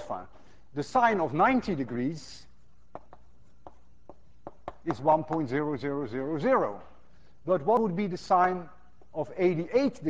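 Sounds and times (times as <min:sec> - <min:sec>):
chalk tapping on a blackboard: 0:02.8 - 0:05.6.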